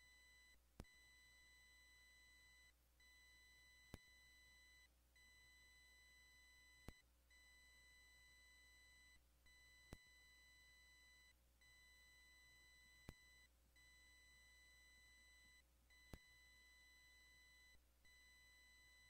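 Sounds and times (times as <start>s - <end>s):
faint high steady tone: 0.0s - 19.0s.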